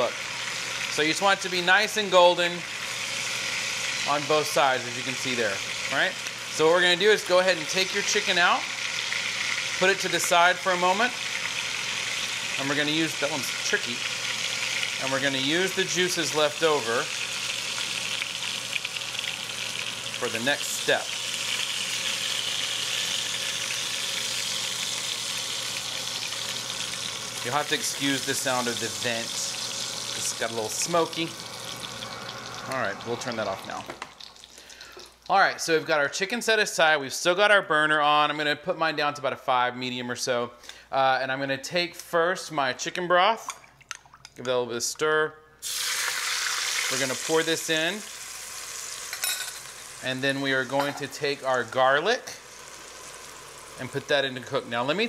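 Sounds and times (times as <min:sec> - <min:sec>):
butter and juices sizzling: 0:00.0 - 0:35.4, 0:45.6 - 0:55.0
vent fan humming: 0:00.0 - 0:35.7, 0:45.6 - 0:55.0.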